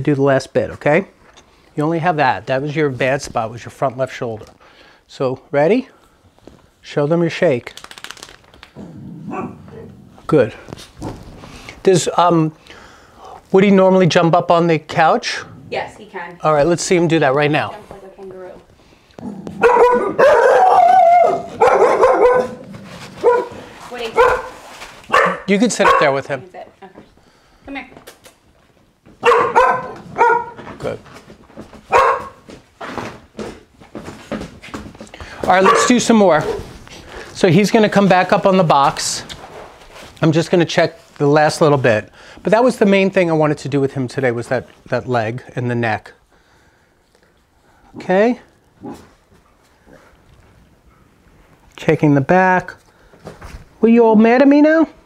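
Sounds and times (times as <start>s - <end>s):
dog barking: 9.3s - 9.6s, 19.6s - 22.6s, 23.2s - 26.2s, 29.2s - 30.6s, 31.9s - 32.4s, 35.5s - 36.6s.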